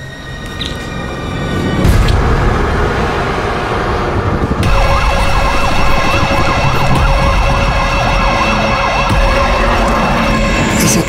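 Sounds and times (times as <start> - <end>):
low rumbling drone: 0.0 - 11.0
siren wailing: 4.4 - 11.0.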